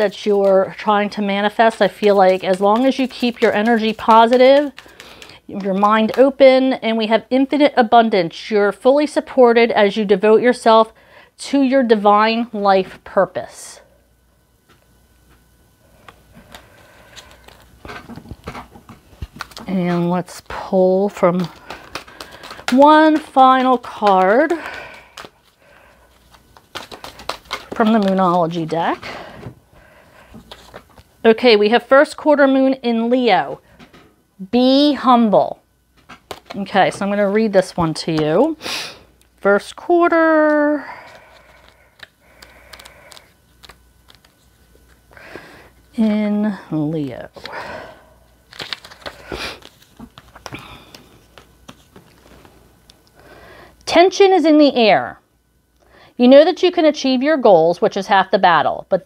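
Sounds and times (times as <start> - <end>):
cards tapping and rustling: 0.0 - 6.4, 16.0 - 29.6, 30.3 - 31.1, 36.0 - 38.6, 40.4 - 45.0, 48.5 - 52.5.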